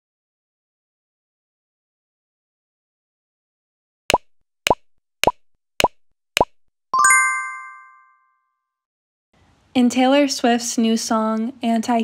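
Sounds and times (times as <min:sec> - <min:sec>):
cartoon pops rising in pitch: 0:04.1 - 0:07.1
bright multi-tone chime: 0:07.0 - 0:08.3.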